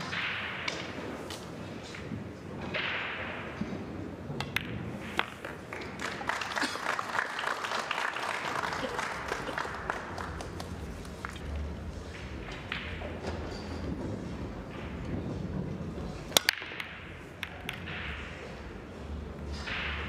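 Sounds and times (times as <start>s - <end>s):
pool balls clicking and rolling: 0.0s - 20.0s
audience applause: 5.7s - 11.4s.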